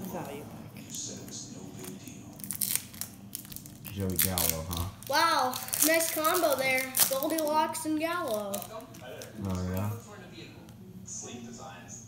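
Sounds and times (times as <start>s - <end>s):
foil wrapper crinkling and tearing: 1.8s - 9.9s.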